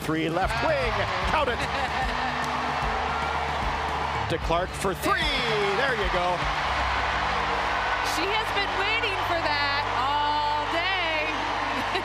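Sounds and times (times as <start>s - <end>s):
sports commentary: 0.0s - 2.0s, 4.1s - 6.6s, 8.0s - 11.9s
background music: 0.0s - 12.0s
crowd noise: 0.0s - 12.0s.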